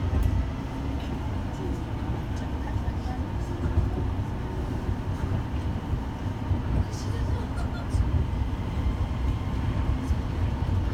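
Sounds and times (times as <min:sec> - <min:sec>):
monorail train rumbling: 0:00.0 - 0:10.9.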